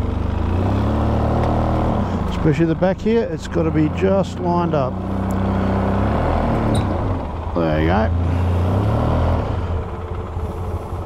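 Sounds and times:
atv engine idling: 0.0s - 11.0s.

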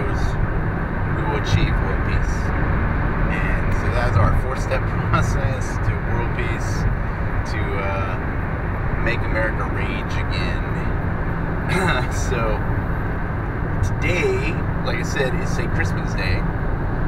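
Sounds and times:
person speaking: 0.0s - 0.3s, 1.2s - 2.5s, 3.3s - 6.8s, 11.7s - 12.6s, 13.8s - 16.4s
car road and engine rumble: 0.0s - 17.0s.

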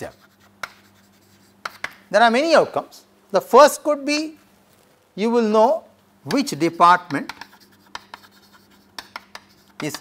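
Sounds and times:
chalk strokes on chalkboard: 0.0s - 2.0s, 7.1s - 10.0s
chalk tapping on chalkboard: 0.0s - 2.1s, 6.3s - 10.0s.

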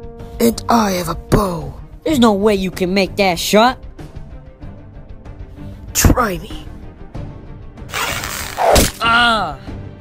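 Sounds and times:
background music: 0.0s - 10.0s
arrow whooshing: 7.9s - 9.0s
arrow hitting target: 7.9s - 9.1s.

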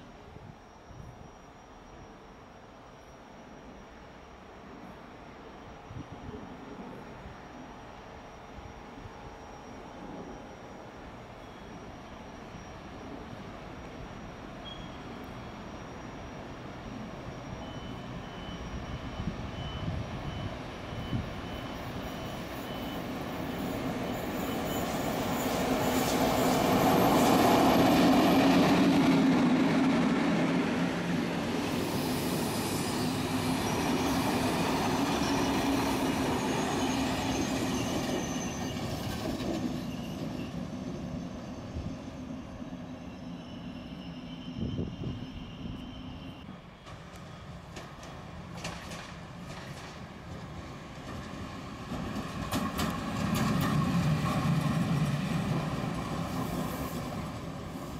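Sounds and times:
electric locomotive drone: 0.0s - 57.9s
high wheel squeal: 9.2s - 47.7s
train wheels rumbling on rail: 11.6s - 57.9s.

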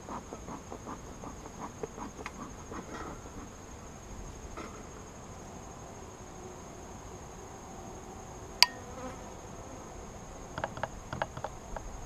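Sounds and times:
honeybees buzzing: 0.0s - 5.8s, 8.6s - 12.0s
hive equipment clicks and knocks: 10.6s - 11.9s.

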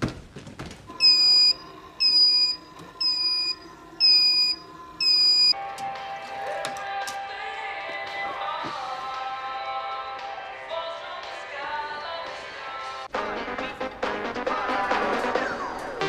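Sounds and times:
electronic beeper loud high beeps: 1.0s - 5.6s.

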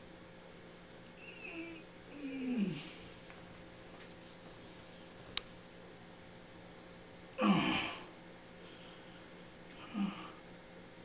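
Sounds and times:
man moaning through closed lips: 1.5s - 3.0s, 7.4s - 8.1s, 9.8s - 10.4s.

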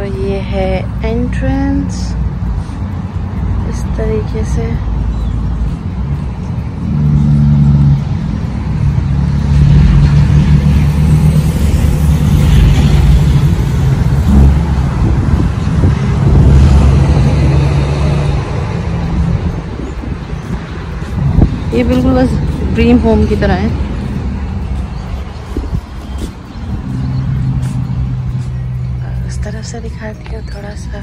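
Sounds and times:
rushing noise: 0.0s - 29.2s
vehicle engine droning: 0.0s - 31.0s.

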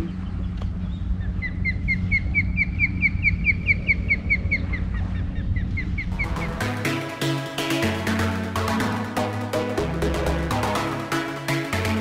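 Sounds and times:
bird chirping rapidly: 0.0s - 6.5s
low hum: 0.0s - 12.0s
electronic music: 6.2s - 12.0s.

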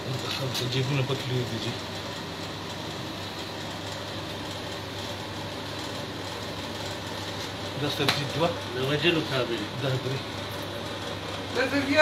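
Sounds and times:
low mechanical hum with hiss: 0.0s - 12.0s.

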